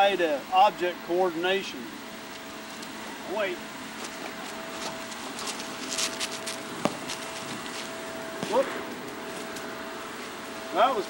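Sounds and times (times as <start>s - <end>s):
faint steady hum: 0.0s - 11.0s
ball bouncing on asphalt: 6.5s - 7.6s, 8.4s - 8.7s.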